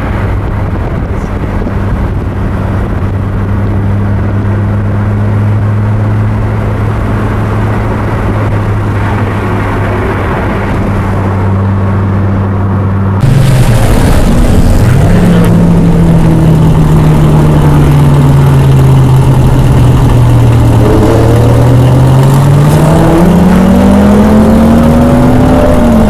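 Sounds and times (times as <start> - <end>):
car engine running hard: 0.0 - 26.0.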